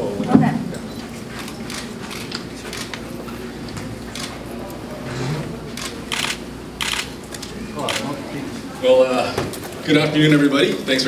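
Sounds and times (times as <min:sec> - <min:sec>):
camera shutter clack: 0:05.8 - 0:07.1.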